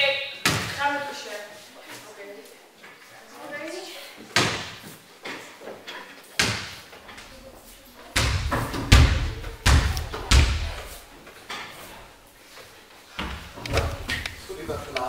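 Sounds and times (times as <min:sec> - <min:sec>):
basketball bouncing on wooden floor: 0:08.2 - 0:10.9.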